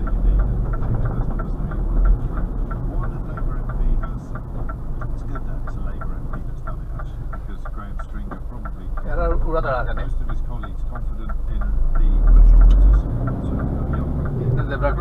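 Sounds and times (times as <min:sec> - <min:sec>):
lorry diesel engine droning: 0:00.0 - 0:15.0
turn signal ticking: 0:00.0 - 0:15.0.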